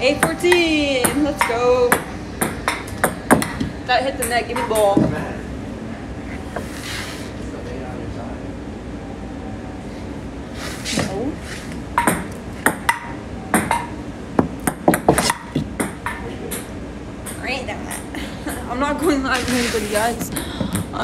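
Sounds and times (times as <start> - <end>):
ping-pong ball clicking: 1.0 - 4.9, 12.0 - 18.0.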